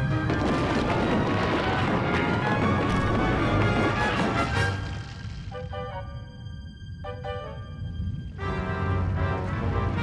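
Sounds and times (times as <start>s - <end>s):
boulders crashing and tumbling: 0.0s - 5.5s
orchestral music: 0.0s - 10.0s.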